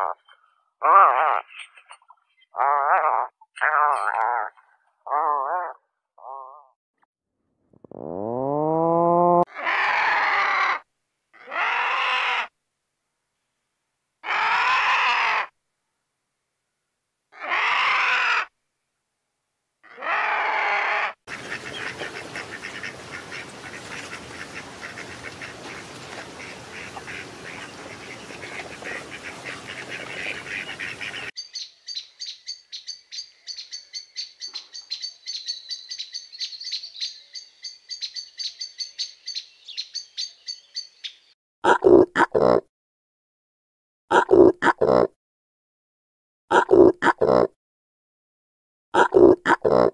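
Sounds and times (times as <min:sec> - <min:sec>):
bird high-pitched chirps: 0:01.5 - 0:02.6, 0:31.1 - 0:41.3
vulture calls: 0:19.8 - 0:41.2.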